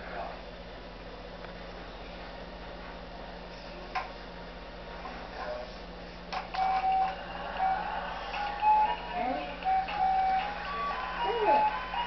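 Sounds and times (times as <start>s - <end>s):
electronic toy beeping tune: 9.6s - 12.0s.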